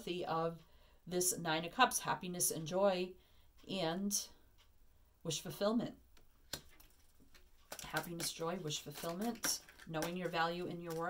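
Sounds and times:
woman speaking: 0.0 - 3.1, 3.7 - 4.4, 5.3 - 6.0, 7.8 - 11.0.

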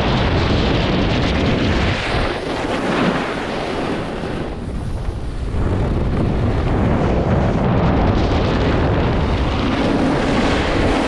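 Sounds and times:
wind rushing over microphone: 0.0 - 11.0
snowboard edges scraping snow: 1.8 - 5.2.

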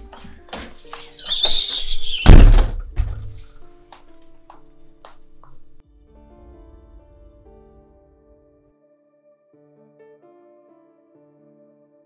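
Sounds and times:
soft background music: 0.0 - 12.0
door swishing shut: 1.2 - 3.4
door slamming: 1.3 - 3.4.

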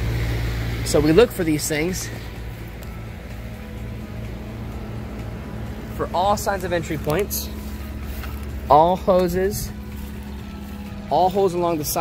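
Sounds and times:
steady low pulsing hum: 0.0 - 12.0.

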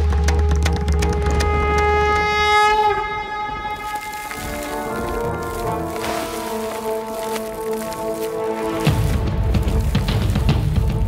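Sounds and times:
soft sustained music: 0.0 - 11.0.

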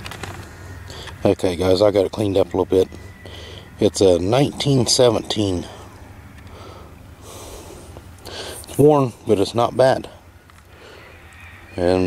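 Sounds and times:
man breathing through nose: 0.8 - 1.2, 3.2 - 3.8, 5.8 - 8.7, 10.7 - 11.2.

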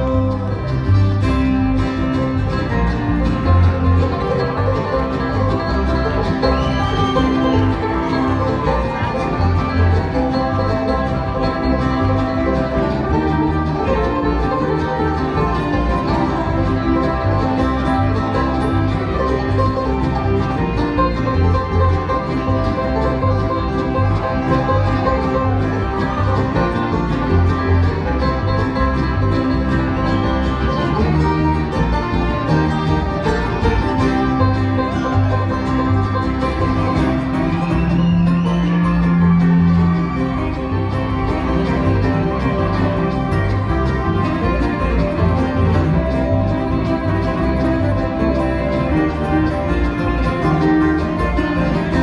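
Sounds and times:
acoustic guitars: 0.0 - 52.0
banjo: 0.0 - 52.0
upright bass: 0.0 - 52.0.

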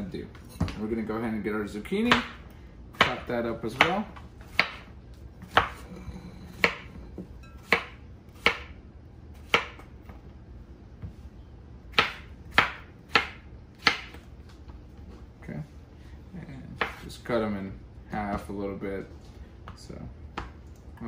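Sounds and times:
knife chopping on wooden board: 2.1 - 5.8, 6.5 - 8.8, 9.4 - 9.9, 11.9 - 14.2, 16.8 - 17.0.

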